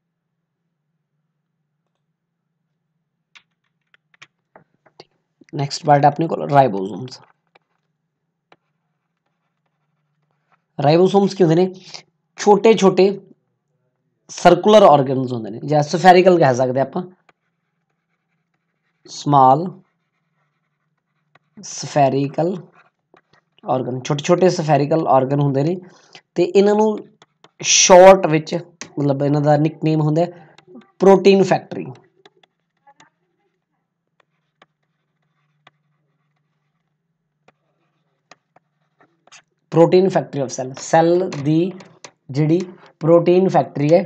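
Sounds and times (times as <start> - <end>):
man speaking: 5.5 - 7.2, 10.8 - 13.2, 14.3 - 17.0, 19.1 - 19.8, 21.6 - 22.7, 23.6 - 32.0, 39.7 - 44.0.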